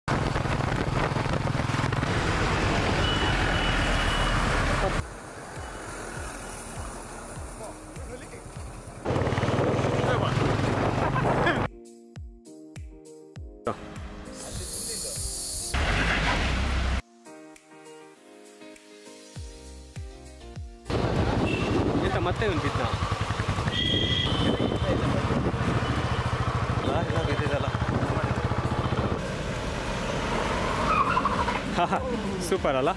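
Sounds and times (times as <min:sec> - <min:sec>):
wind rushing over microphone: 0:00.1 - 0:02.6, 0:20.9 - 0:22.2, 0:23.9 - 0:26.1
motorcycle engine running: 0:07.4 - 0:11.7, 0:20.9 - 0:29.9.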